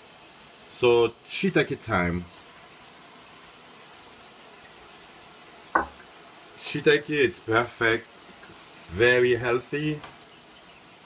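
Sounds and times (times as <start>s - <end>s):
faint hiss of simmering broth: 0.0s - 11.0s.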